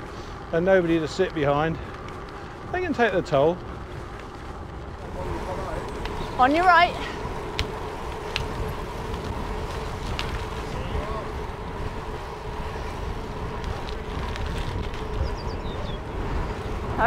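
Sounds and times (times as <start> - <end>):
bicycle tyres rolling on tarmac: 0.0 - 17.0
wind rush on microphone: 0.0 - 17.0
faint voices: 4.8 - 17.0.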